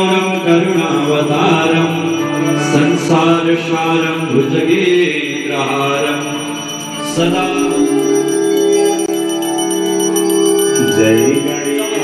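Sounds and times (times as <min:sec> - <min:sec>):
brass hand bell ringing rapidly: 0:00.0 - 0:12.0.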